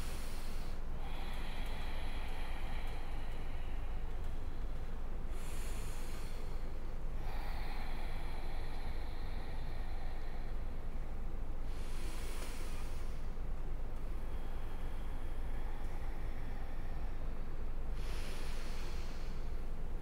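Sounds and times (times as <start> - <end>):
throaty breathing through nose: 0.0 - 4.6, 5.3 - 13.4, 14.1 - 19.8.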